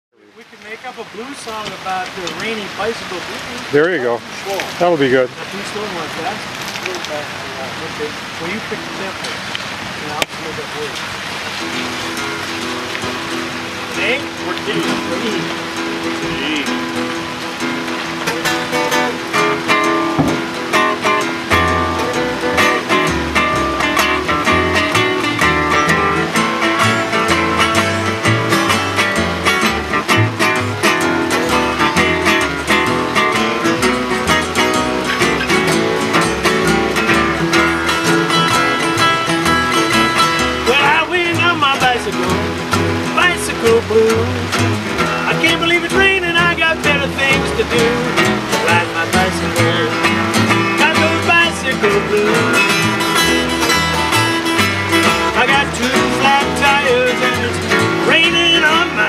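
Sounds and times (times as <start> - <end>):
upright bass plucking: 0.2 - 59.0
acoustic guitars strumming blues: 0.3 - 59.0.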